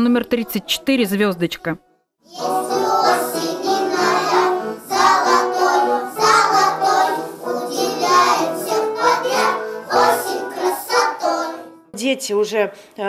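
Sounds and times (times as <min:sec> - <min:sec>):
young children singing: 0:02.3 - 0:11.8.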